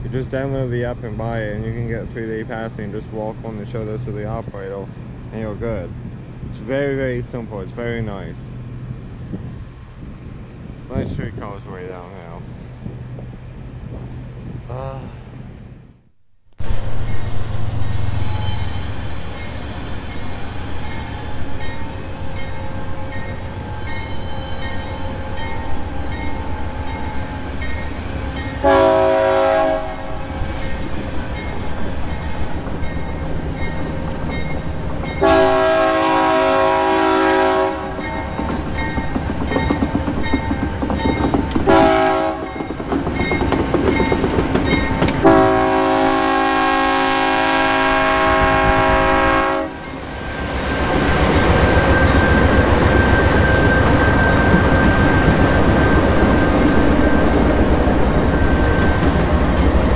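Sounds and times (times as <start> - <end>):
train engines and wheels rumbling: 0.0 - 59.9
locomotive air horn blasts: 28.6 - 30.2, 35.2 - 38.0, 41.7 - 42.5, 45.2 - 49.9.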